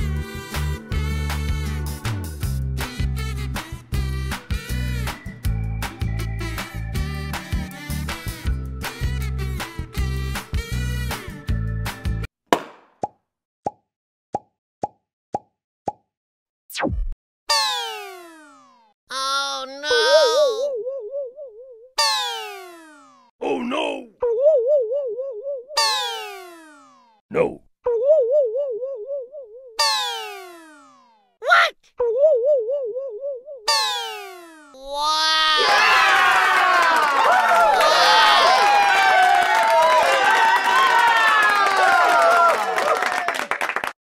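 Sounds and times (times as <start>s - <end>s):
children cheering and shouting: 34.8s - 43.2s.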